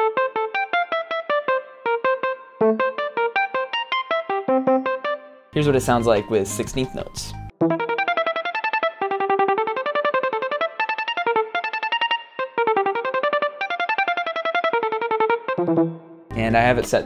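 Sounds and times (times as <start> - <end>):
electric piano arpeggio: 0.0 - 16.1.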